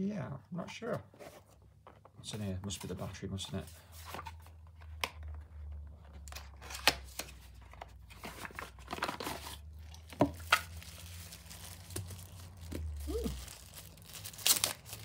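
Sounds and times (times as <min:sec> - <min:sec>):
packaging crinkling and tearing: 0:06.2 - 0:15.0.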